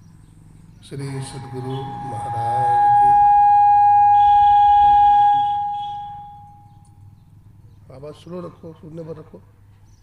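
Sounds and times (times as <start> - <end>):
microphone feedback howl: 1.0 - 7.0.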